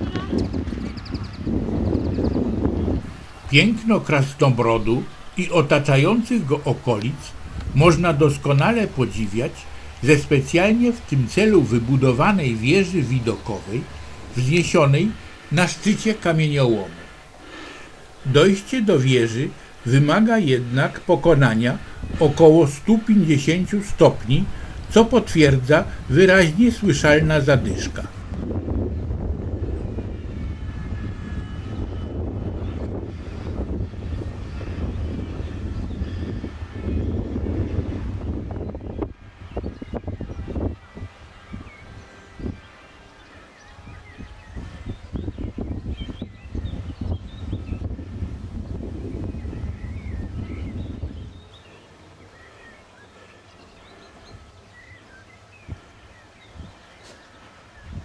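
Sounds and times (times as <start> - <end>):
wind buffeting microphone: 0.0 - 18.5, 20.8 - 51.8, 53.6 - 58.0
birds chirping faintly: 0.0 - 58.0.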